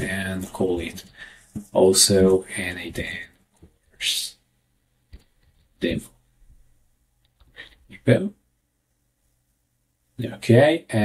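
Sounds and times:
man speaking: 0.0 - 3.4, 4.0 - 4.4, 5.8 - 6.2, 7.9 - 8.4, 10.2 - 11.0.

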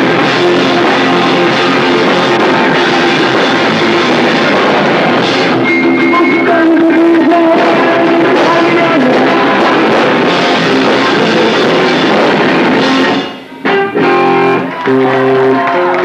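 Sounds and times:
person singing: 0.0 - 16.0
rock band playing live: 0.0 - 16.0.

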